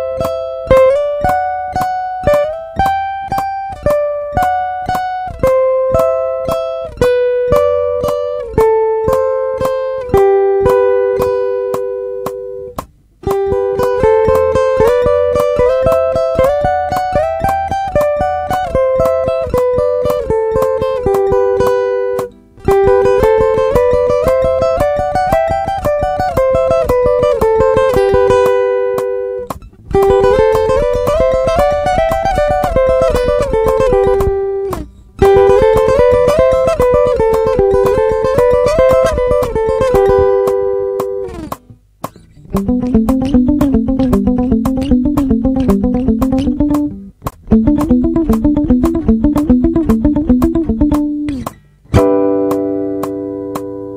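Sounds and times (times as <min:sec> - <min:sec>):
acoustic guitar lick: 0:00.0 - 0:53.9.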